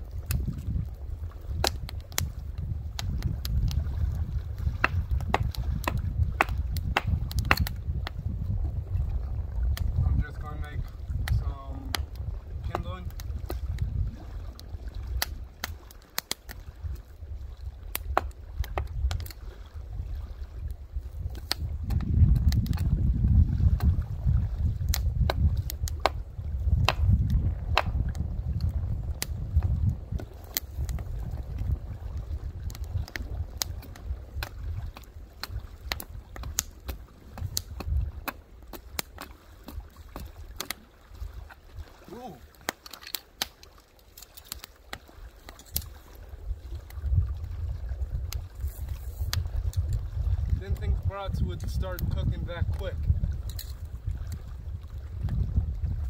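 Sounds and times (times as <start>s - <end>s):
wind rumble on microphone: 0.0s - 56.0s
blade splitting wood: 4.8s - 7.7s.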